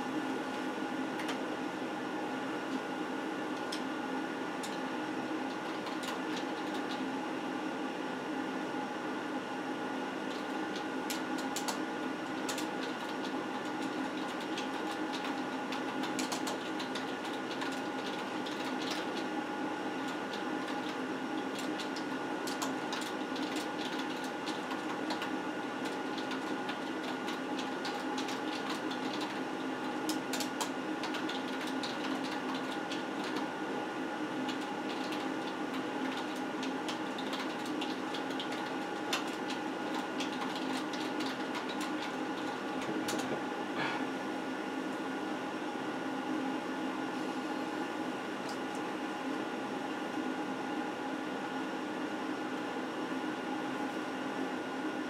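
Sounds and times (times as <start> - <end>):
steady electrical hum: 0.0 - 55.0.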